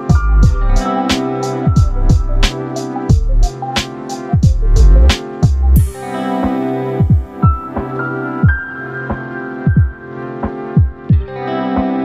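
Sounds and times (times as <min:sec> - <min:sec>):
held synth chords: 0:00.0 - 0:12.0
deep electronic bass drum: 0:00.1 - 0:00.8, 0:01.7 - 0:02.5, 0:03.1 - 0:03.5, 0:04.4 - 0:05.9.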